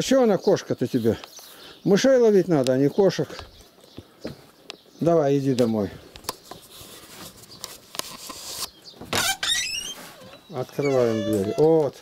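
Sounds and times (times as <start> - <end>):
door hinges squeaking: 9.0 - 12.0.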